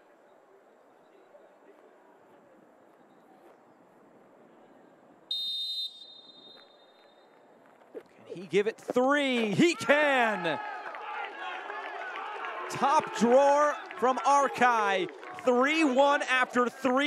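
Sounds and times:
faint background ambience: 0.0s - 17.0s
referee's whistle blast: 5.3s - 7.2s.

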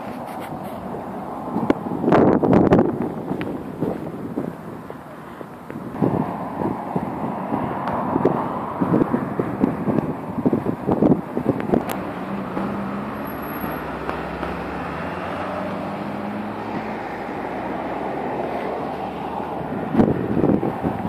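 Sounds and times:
low engine hum: 0.0s - 21.0s
passing cars rushing: 0.0s - 21.0s.

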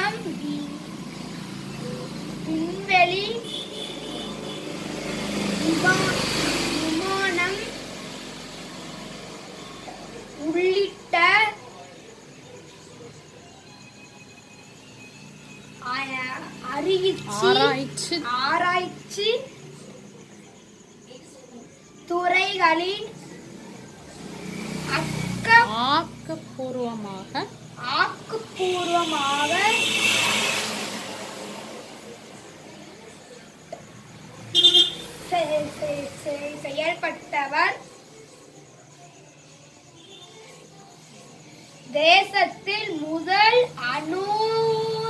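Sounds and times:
road vehicle rushing past: 0.0s - 10.4s, 23.1s - 33.4s.

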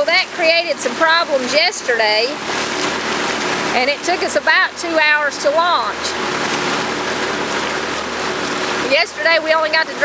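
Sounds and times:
faint motor hum: 0.0s - 10.0s
water and wind rushing: 0.0s - 10.0s.

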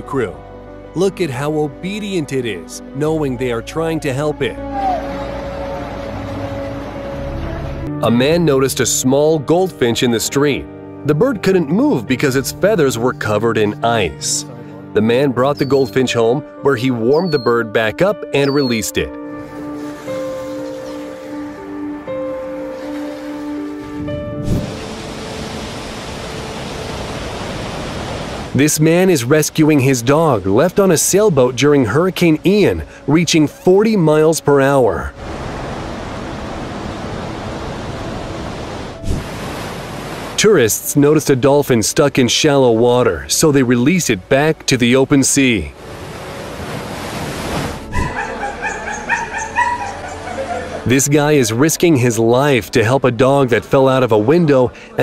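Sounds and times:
soft background music: 0.0s - 55.0s
hurricane wind and rain: 23.0s - 28.6s, 35.1s - 40.4s, 45.7s - 48.2s
dog yelping and whimpering: 47.9s - 50.8s.

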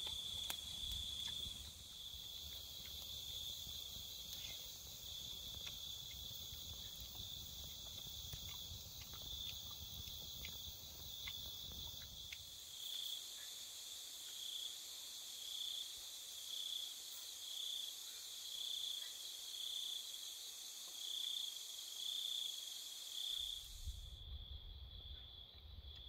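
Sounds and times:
cricket-like chirp: 0.0s - 26.0s
night insects chorus: 0.0s - 26.0s.

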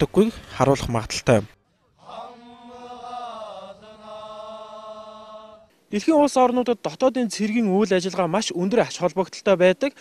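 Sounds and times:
soldiers chanting in unison: 1.9s - 5.7s.

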